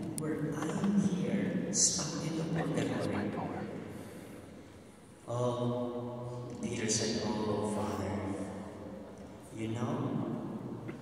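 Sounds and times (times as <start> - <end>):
man holding a vowel through speakers: 1.8 - 3.8.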